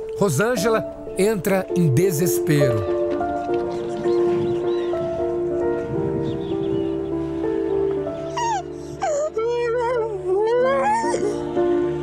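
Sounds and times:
soft background music: 0:00.0 - 0:12.0
woman wailing and sobbing: 0:08.4 - 0:11.8.

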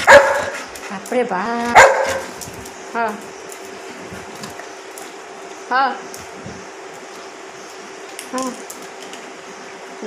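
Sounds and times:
dog barking: 0:00.0 - 0:00.6, 0:01.7 - 0:02.3.

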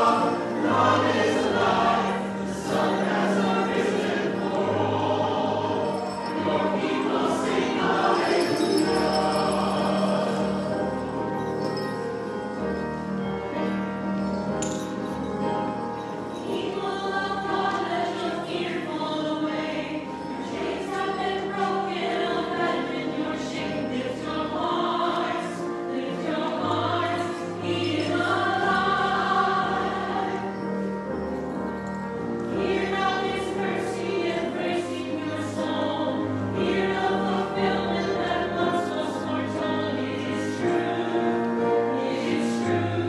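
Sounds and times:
church choir singing: 0:00.0 - 0:43.0.

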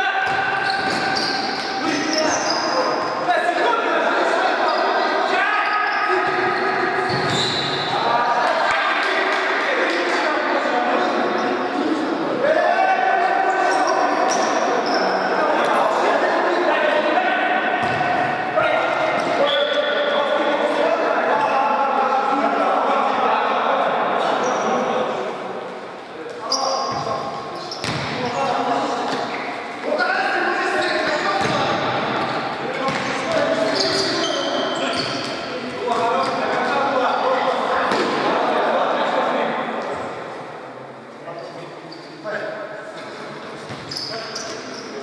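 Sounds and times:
ball kicked and bouncing: 0:27.8 - 0:28.2.

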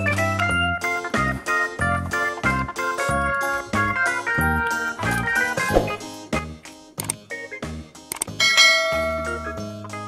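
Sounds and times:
quick clicks: 0:07.0 - 0:07.2, 0:08.1 - 0:08.3.

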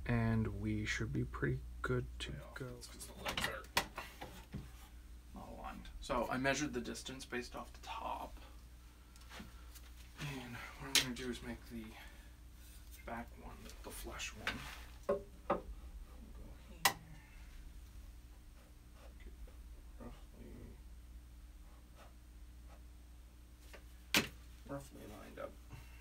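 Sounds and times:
wood knocking and scraping on wood: 0:03.1 - 0:04.9, 0:14.4 - 0:15.8
wooden board knocking on frame: 0:15.1 - 0:15.7.

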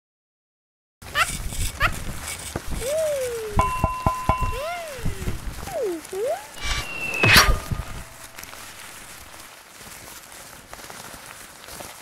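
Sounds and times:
sliding tones: 0:01.3 - 0:09.4
rising chirps: 0:02.9 - 0:09.3.

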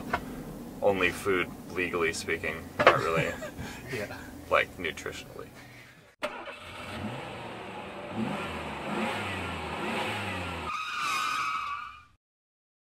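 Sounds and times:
vehicle engine revving: 0:06.2 - 0:10.7
high wavering squeal: 0:10.7 - 0:12.2.

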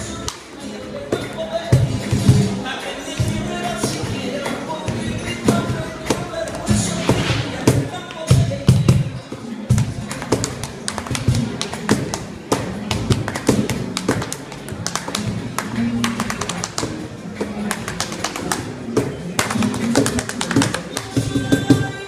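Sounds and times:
flamenco music: 0:00.0 - 0:22.0.

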